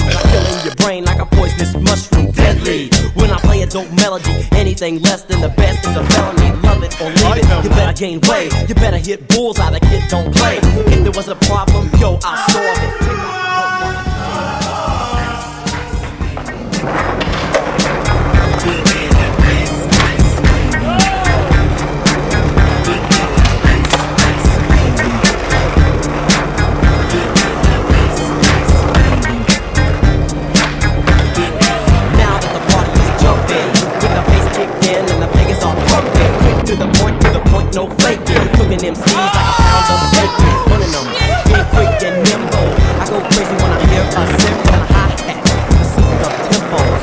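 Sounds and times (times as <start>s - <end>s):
hip hop beat: 0.0s - 47.0s
skateboard wheels rolling on concrete: 0.2s - 9.0s, 13.8s - 47.0s
skateboard clacks: 15.6s - 47.0s.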